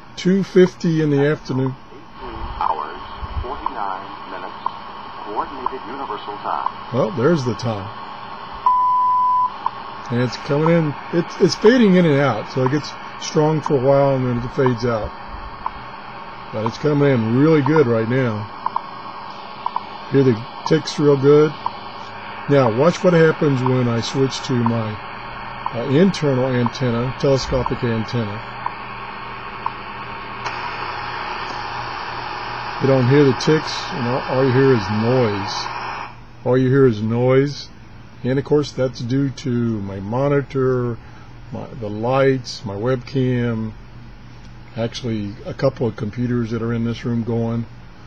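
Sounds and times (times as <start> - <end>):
low hum: 0.0 - 36.4
shortwave radio hiss: 0.0 - 48.0
time signal tone: 8.6 - 15.0, 15.6 - 18.9, 19.6 - 28.8
seconds tick: 12.6 - 12.9, 14.5 - 14.8, 18.6 - 18.9, 19.6 - 19.9.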